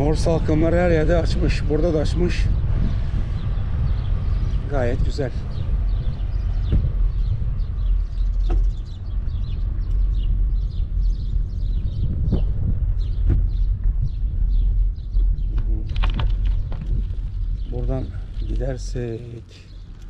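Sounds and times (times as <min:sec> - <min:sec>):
small birds chirping: 0:00.0 - 0:20.0
wind rumble on microphone: 0:00.0 - 0:20.0
bicycle knocks from bumps: 0:15.5 - 0:17.7.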